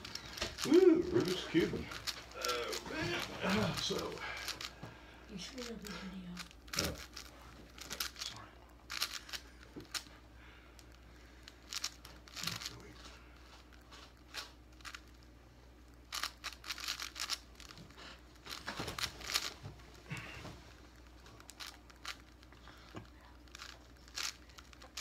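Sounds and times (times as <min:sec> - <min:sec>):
puzzle cube clicking and rattling: 0:00.0 - 0:10.1, 0:10.8 - 0:12.9, 0:14.2 - 0:15.2, 0:16.0 - 0:19.6, 0:21.0 - 0:25.0.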